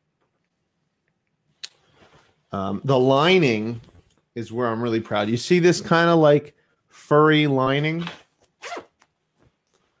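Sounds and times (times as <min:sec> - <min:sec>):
jacket fabric rasping: 0:08.0 - 0:09.1.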